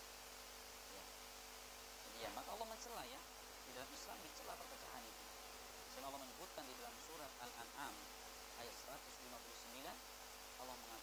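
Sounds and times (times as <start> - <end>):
steady background hiss: 0.0 - 11.0
muffled man speaking: 2.1 - 5.2, 5.9 - 8.0, 8.6 - 10.0, 10.6 - 11.0.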